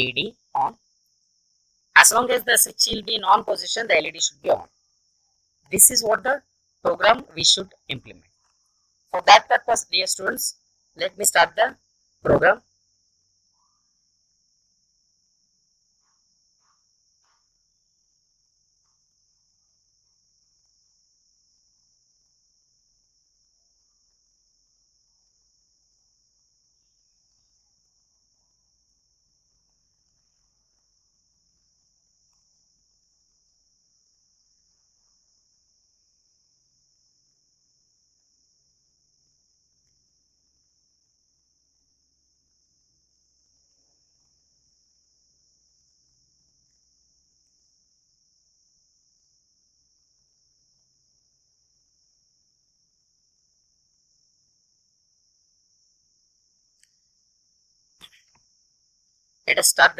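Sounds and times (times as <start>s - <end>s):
faint ticks: 56.7s - 57.0s.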